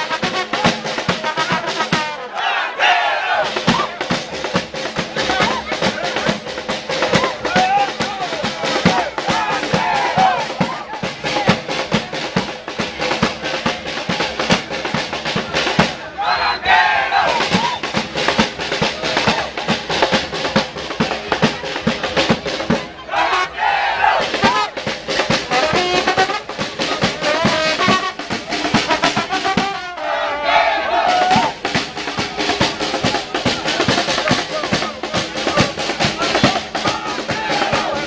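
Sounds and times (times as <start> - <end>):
crowd voices: 0.0 - 38.0
drums and trombone street band: 0.0 - 38.0.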